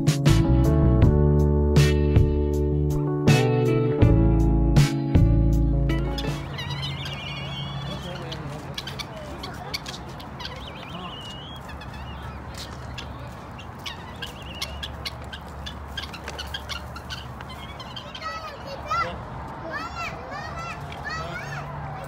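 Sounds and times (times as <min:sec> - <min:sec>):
guineafowl calling: 0:05.9 - 0:19.1.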